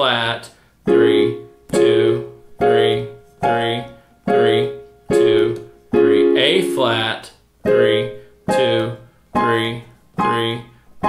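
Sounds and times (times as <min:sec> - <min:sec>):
piano block chords: 0:00.8 - 0:10.8.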